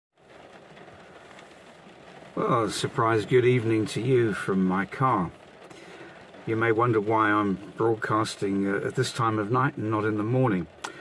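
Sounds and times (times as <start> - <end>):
car cabin rumble and hiss: 0.2 - 11.0.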